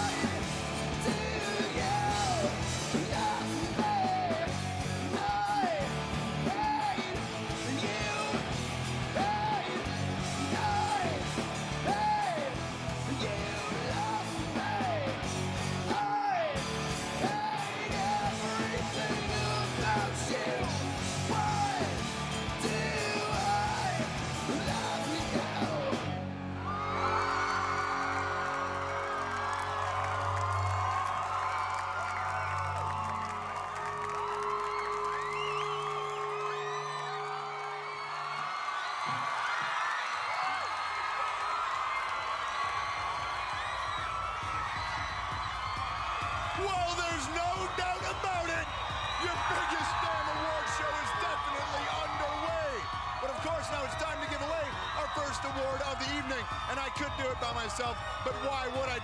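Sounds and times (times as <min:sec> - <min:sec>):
live rock band with singer: 0:00.0 - 0:27.0
large crowd cheering and yelling: 0:00.0 - 0:59.0.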